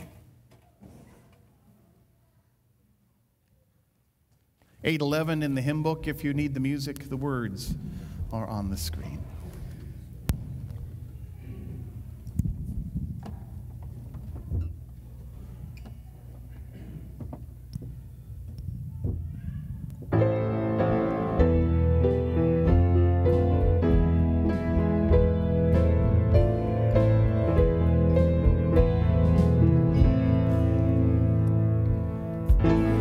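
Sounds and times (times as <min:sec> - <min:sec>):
low room hum: 0:00.0 - 0:33.0.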